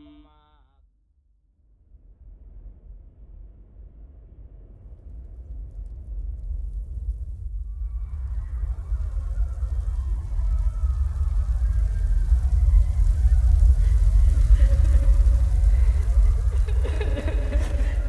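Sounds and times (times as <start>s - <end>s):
deep low rumble: 1.9s - 18.0s.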